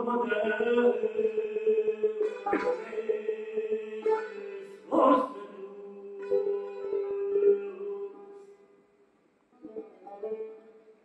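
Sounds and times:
plucked long-necked lute: 0:02.0 - 0:08.6, 0:09.5 - 0:11.0.

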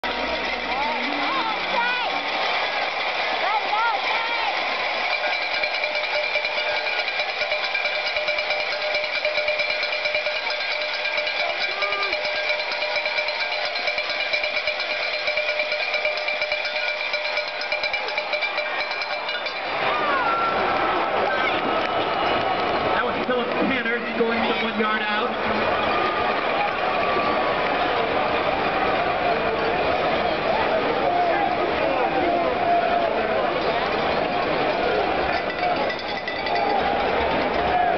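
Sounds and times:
cowbells ringing: 0:00.0 - 0:02.3, 0:04.8 - 0:21.7, 0:32.7 - 0:37.9
crowd voices: 0:00.0 - 0:37.9.

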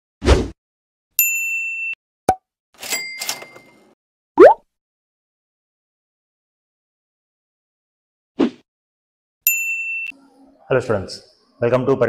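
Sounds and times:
chiming rattle: 0:02.8 - 0:03.8, 0:09.5 - 0:10.2.

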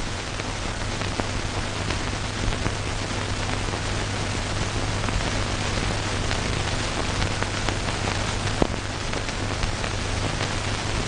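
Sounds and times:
film soundtrack hiss and crackle: 0:00.0 - 0:11.0.

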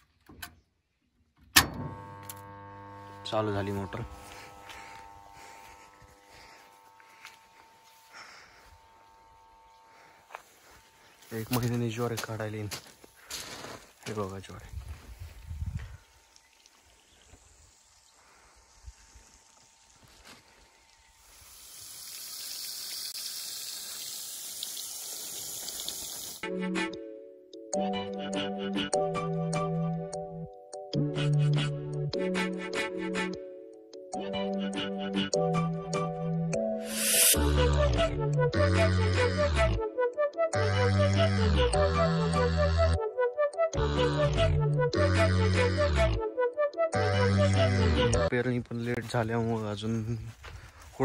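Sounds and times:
faint outdoor background: 0:00.0 - 0:51.0
steady electrical hum: 0:01.8 - 0:11.9
water jetting from a pipe: 0:20.9 - 0:26.4, 0:36.9 - 0:37.4.

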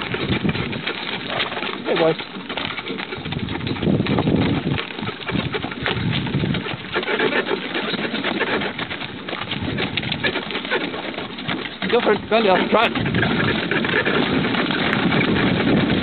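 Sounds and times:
harness rattling: 0:00.0 - 0:16.0
hooves clattering: 0:00.0 - 0:16.0
wheels crunching on dirt: 0:00.0 - 0:16.0.

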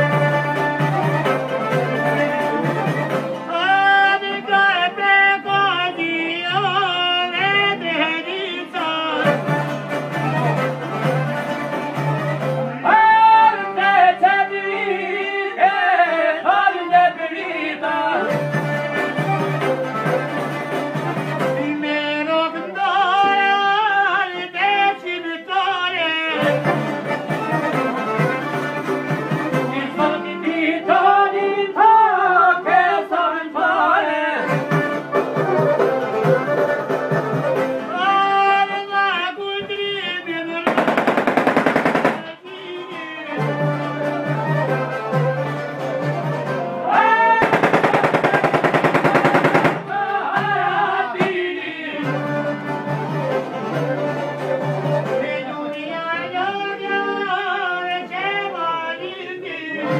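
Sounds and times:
folk instrumental music: 0:00.0 - 0:59.9
rapid run of notes: 0:40.7 - 0:42.4, 0:47.3 - 0:50.0.

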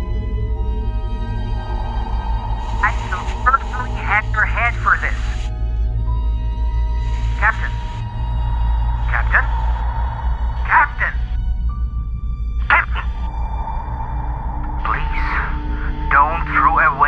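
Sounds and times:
dark low droning film score: 0:00.0 - 0:17.0
radio hiss: 0:02.7 - 0:05.5, 0:07.0 - 0:08.1, 0:09.0 - 0:09.8, 0:12.6 - 0:13.1
man speaking through radio filter: 0:02.8 - 0:05.4, 0:07.3 - 0:07.9, 0:09.1 - 0:09.6, 0:10.6 - 0:11.4, 0:12.6 - 0:13.3, 0:14.8 - 0:17.0.

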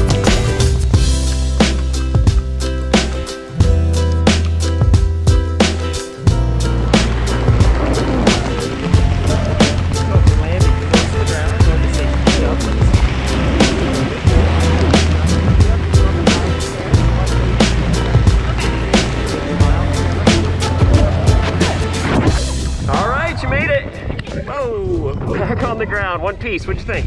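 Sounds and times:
background music with beat: 0:00.0 - 0:23.4.

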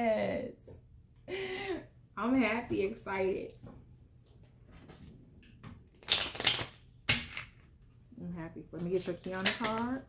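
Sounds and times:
cards rustling: 0:05.9 - 0:07.5
cards slapping and sliding: 0:05.9 - 0:07.5.

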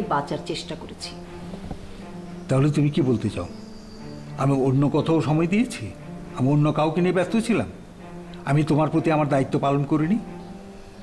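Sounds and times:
people talking: 0:00.0 - 0:01.2
low background music drone: 0:00.0 - 0:11.0.

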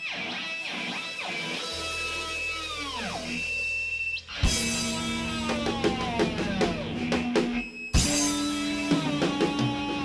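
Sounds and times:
electric guitar pitch bends: 0:00.0 - 0:10.0.

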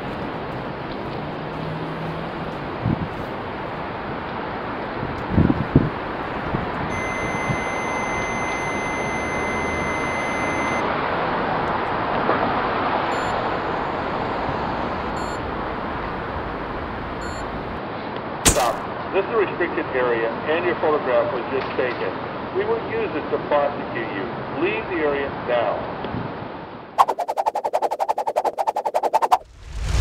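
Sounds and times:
short electronic beeps: 0:06.9 - 0:10.8, 0:13.1 - 0:13.4, 0:15.2 - 0:15.4
sharp click: 0:18.5 - 0:18.8.

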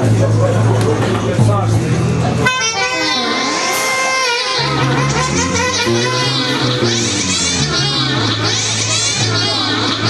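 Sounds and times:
low bass drone: 0:00.0 - 0:10.0
saxophones holding steady tones: 0:02.3 - 0:10.0
electronic effects sweeping in pitch: 0:02.7 - 0:10.0.

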